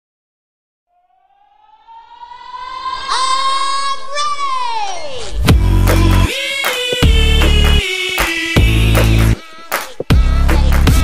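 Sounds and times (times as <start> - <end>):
electronic tone rising in pitch: 0.9 - 6.3.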